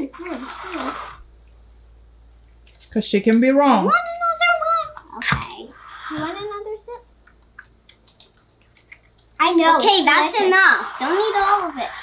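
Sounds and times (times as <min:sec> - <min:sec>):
faint clicks and taps: 0:06.9 - 0:09.4.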